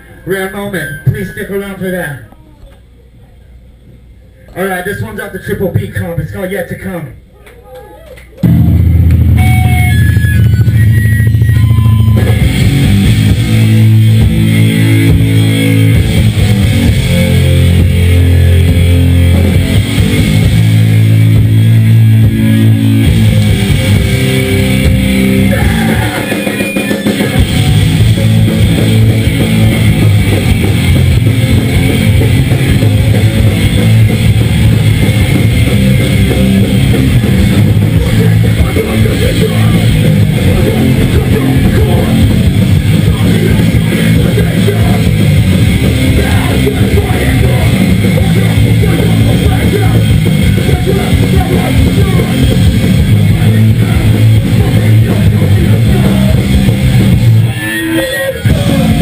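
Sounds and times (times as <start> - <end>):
distorted electric guitars: 0.0 - 2.3, 8.3 - 59.0
bass guitar: 7.2 - 59.0
drum kit: 8.4 - 59.0.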